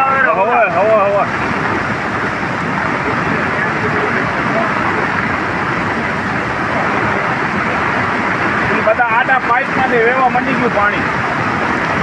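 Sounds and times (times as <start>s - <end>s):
floodwater rushing: 0.0s - 12.0s
heavy rain: 0.0s - 12.0s.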